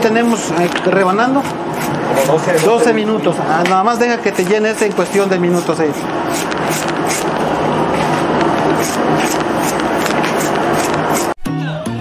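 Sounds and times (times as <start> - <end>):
knife scraping corn cob: 0.0 - 3.1, 4.1 - 7.4, 8.0 - 11.4.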